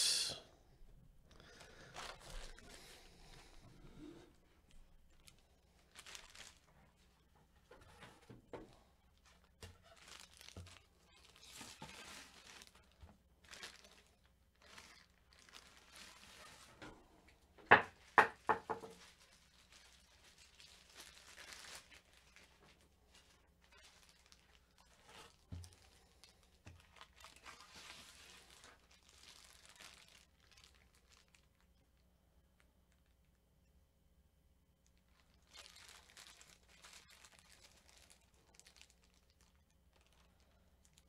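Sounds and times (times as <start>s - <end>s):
plastic wrapping crinkling: 1.3s - 33.3s, 34.8s - 41.0s.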